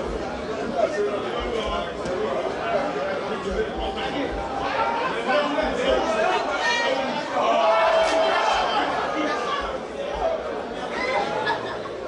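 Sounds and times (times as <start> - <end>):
crowd of voices chattering: 0.0 - 12.0.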